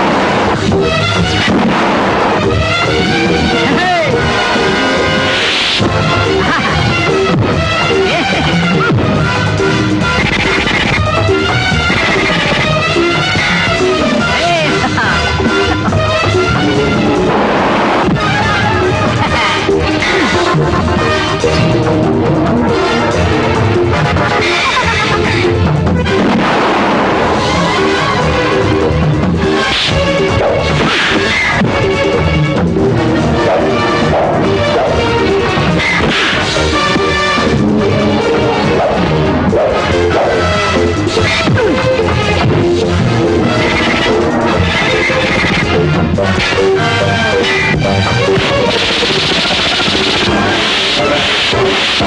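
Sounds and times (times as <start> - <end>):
background film music: 0.0 - 52.0
explosion blast: 0.0 - 52.0
hits: 0.0 - 52.0.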